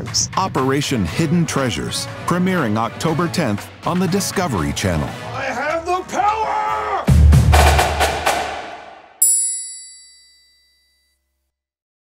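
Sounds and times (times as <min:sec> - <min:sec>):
bright metallic chime ding: 0:09.2 - 0:11.1.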